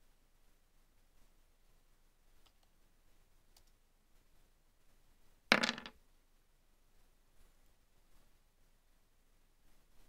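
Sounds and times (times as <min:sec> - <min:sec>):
dice clattering on table: 0:05.5 - 0:06.0.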